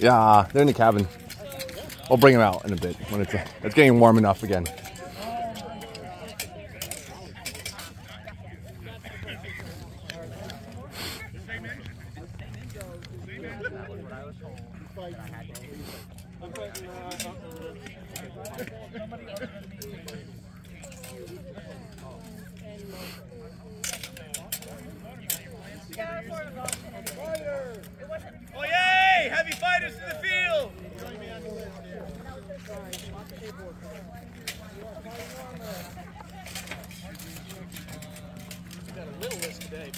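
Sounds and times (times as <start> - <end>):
onlookers chattering: 0.0 - 39.9
fencing blades clicking: 0.2 - 8.4, 16.5 - 28.7, 29.4 - 39.9.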